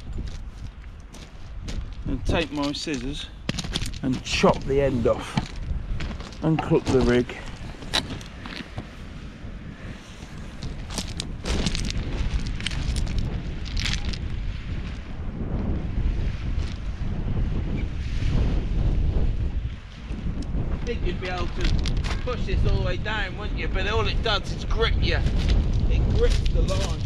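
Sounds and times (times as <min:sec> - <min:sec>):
wind buffeting microphone: 0:00.0 - 0:27.0
handling clicks and rustles: 0:02.4 - 0:09.0, 0:10.2 - 0:14.2.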